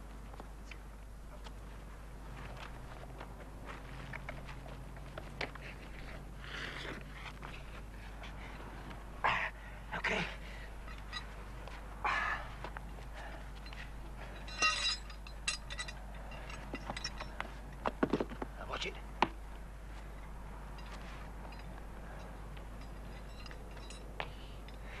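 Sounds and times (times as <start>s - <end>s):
steady low hum: 0.0s - 25.0s
knocks and clinks: 10.8s - 11.4s, 13.6s - 18.4s, 20.7s - 24.9s.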